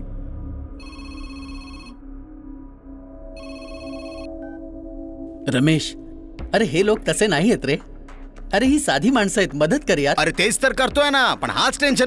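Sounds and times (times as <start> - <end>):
mobile phone ringing: 0.8 - 2.0, 3.4 - 4.6.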